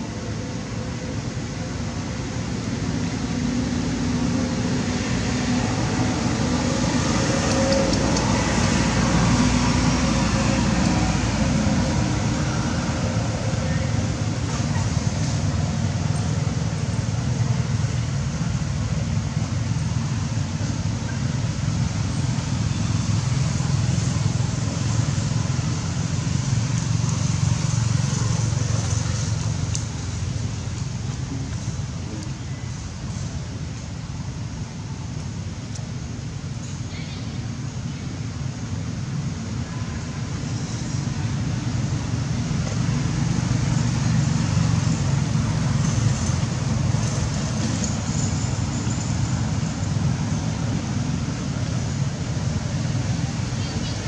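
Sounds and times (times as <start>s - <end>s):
vehicle traffic rumble: 0.0s - 54.0s.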